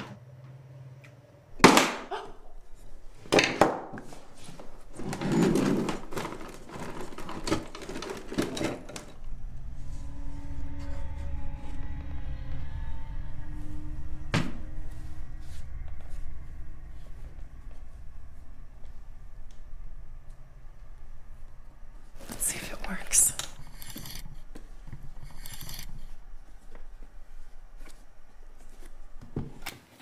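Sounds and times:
low steady drone: 6.0 - 29.6.

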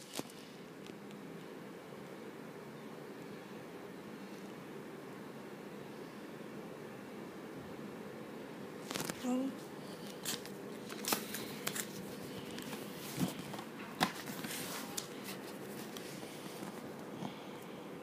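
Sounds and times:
book pages rustling: 10.0 - 16.9.

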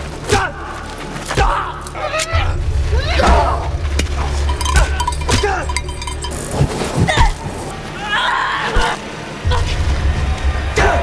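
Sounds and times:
deep bass: 1.4 - 7.8, 9.4 - 11.0
sharp hits or clinks: 4.0 - 7.4
voices crying out: 7.0 - 9.8.

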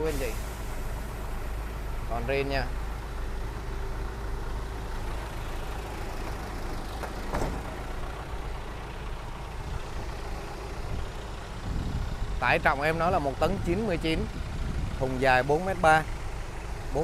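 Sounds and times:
truck engine idling: 0.0 - 17.0.

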